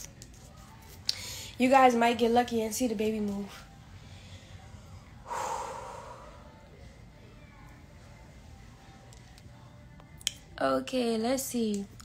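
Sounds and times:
woman exhaling: 5.3 - 6.5.

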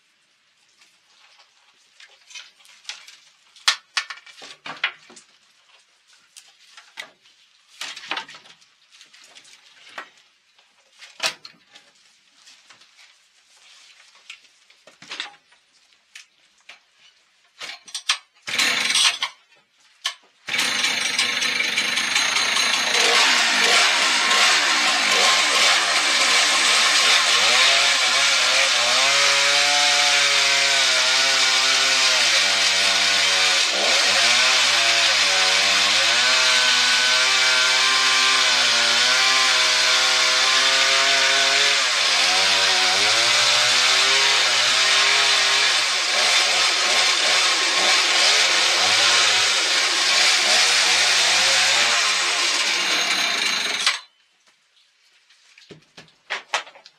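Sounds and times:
chainsaw cutting log: 18.4 - 19.2, 20.4 - 54.1.

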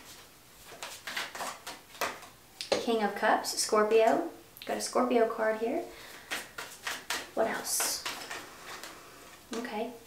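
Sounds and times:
cards rustling: 0.1 - 2.4, 6.0 - 9.0
woman speaking: 2.7 - 5.9, 7.4 - 8.2, 9.5 - 10.0.

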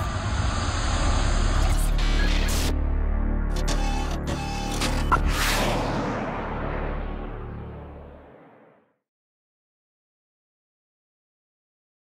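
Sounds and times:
whoosh: 5.1 - 9.0.

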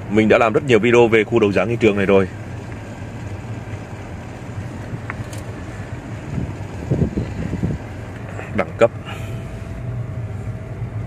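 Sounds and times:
low engine hum: 0.0 - 11.0
wind noise: 4.7 - 8.1.

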